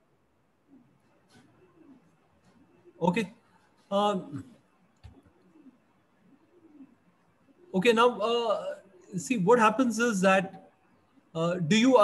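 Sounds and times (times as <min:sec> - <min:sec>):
bird cooing: 0:00.6 - 0:09.4.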